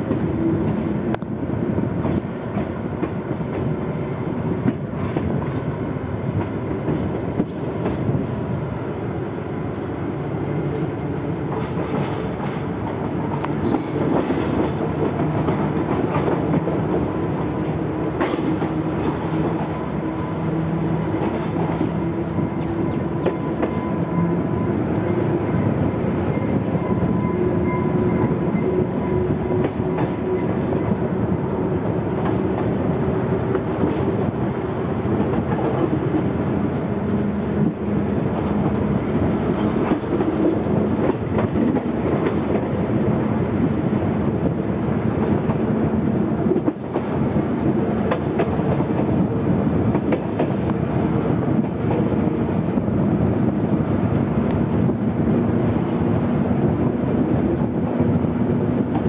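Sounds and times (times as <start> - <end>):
rail car running drone: 0.0 - 59.0.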